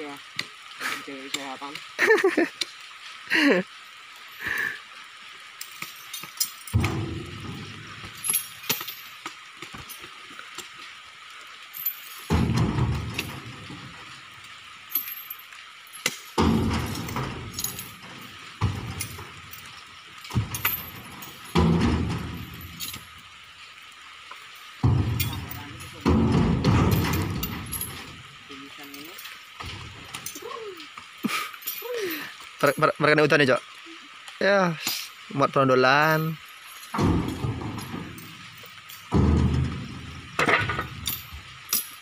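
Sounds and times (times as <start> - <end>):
heavy rain hissing: 0.0 - 42.0
low rumbling: 6.7 - 8.7, 12.3 - 14.6, 24.8 - 28.5, 36.9 - 41.7
fruit bunches thudding into truck bed: 12.3 - 13.8, 16.4 - 17.6, 20.3 - 22.6, 24.8 - 28.0, 37.0 - 38.4, 39.1 - 41.0.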